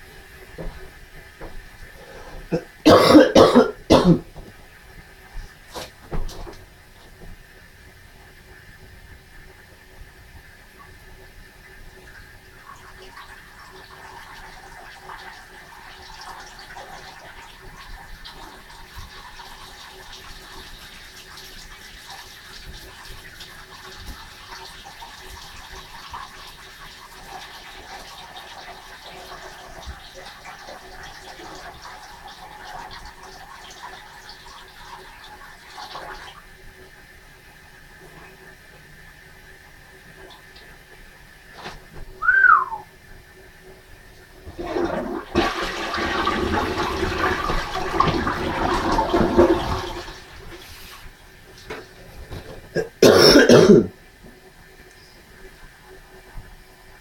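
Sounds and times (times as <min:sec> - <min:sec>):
short falling squeak: 0:42.2 - 0:42.8
water rushing: 0:42.2 - 0:42.8.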